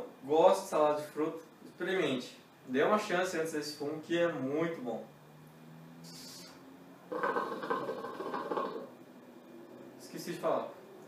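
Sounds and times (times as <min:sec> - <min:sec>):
hookah water bubbling: 0:07.1 - 0:09.0.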